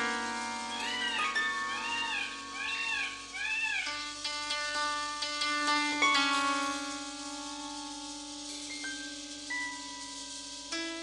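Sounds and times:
plucked-string music: 0.0s - 11.0s
meow-like animal calls: 0.7s - 4.2s.

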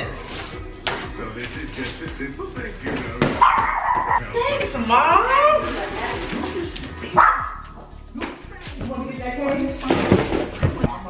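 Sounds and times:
dog barking: 3.4s - 4.2s, 7.1s - 7.8s.

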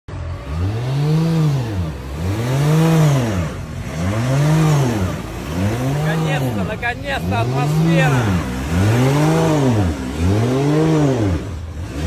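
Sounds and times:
car engine revving: 0.1s - 12.0s.

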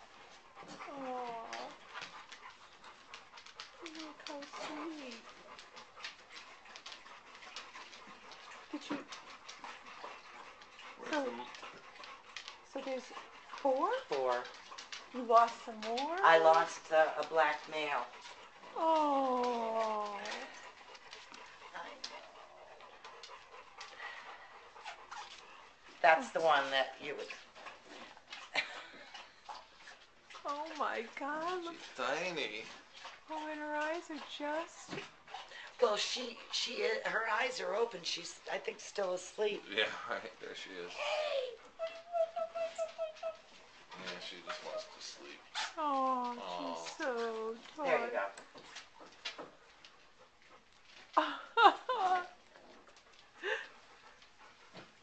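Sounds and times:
woman's voice: 0.8s - 1.8s, 3.8s - 5.3s, 11.0s - 11.5s, 12.7s - 14.5s, 15.1s - 20.7s, 26.0s - 27.4s, 30.4s - 31.8s, 33.3s - 35.0s, 35.6s - 39.6s, 41.0s - 43.5s, 45.8s - 48.4s.

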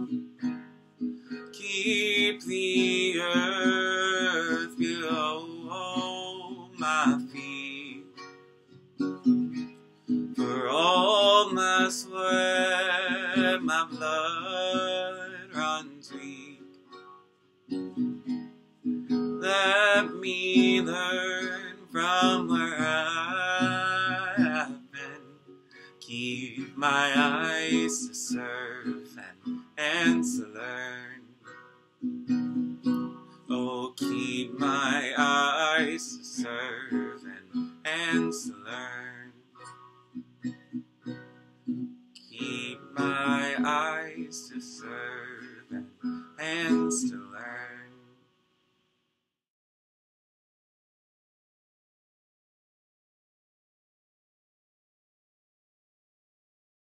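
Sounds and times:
acoustic guitar: 0.0s - 48.4s
man singing: 1.5s - 8.2s, 10.4s - 16.7s, 19.4s - 31.5s, 33.5s - 39.7s, 42.2s - 48.1s.

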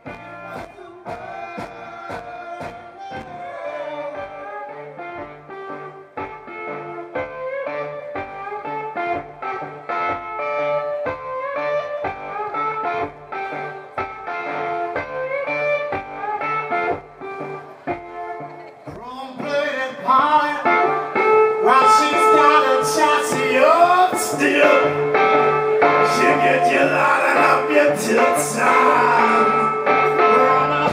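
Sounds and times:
blues band playing: 0.0s - 30.9s
lead guitar with bending notes: 0.0s - 30.9s.

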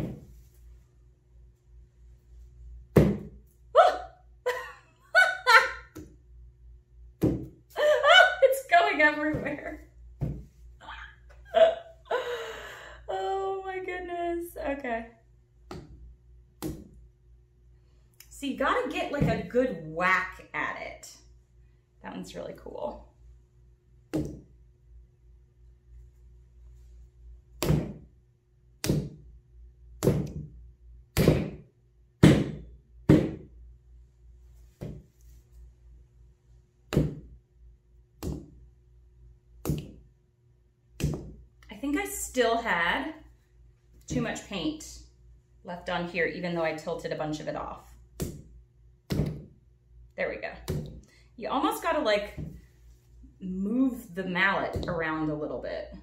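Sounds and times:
mallet thumping wet paint: 2.9s - 3.4s, 7.2s - 7.6s, 15.6s - 17.0s, 24.1s - 24.5s, 27.6s - 28.1s, 28.8s - 29.3s, 30.0s - 33.6s, 36.9s - 37.4s, 38.2s - 38.6s, 39.6s - 40.1s, 41.0s - 41.5s, 48.1s - 49.6s, 50.6s - 51.1s, 54.6s - 55.1s
woman giggling: 3.8s - 5.9s, 7.8s - 8.6s, 10.8s - 12.8s.

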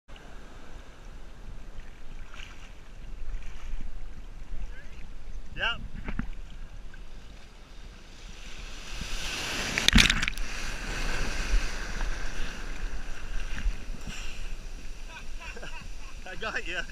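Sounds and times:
ocean surf sloshing: 0.1s - 16.9s
wave breaking with loud splash: 8.0s - 16.9s.

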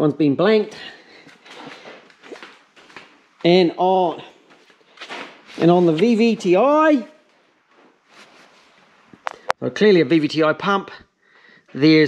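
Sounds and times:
faint handling noises: 4.2s - 9.6s.

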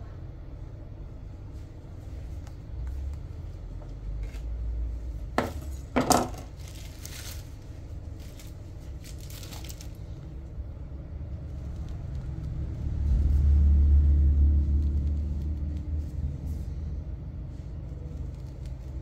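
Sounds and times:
low rumble: 6.6s - 19.0s.

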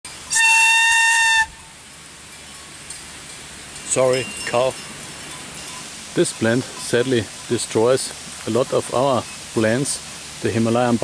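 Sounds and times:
plant stalk whistle note: 0.3s - 1.6s.

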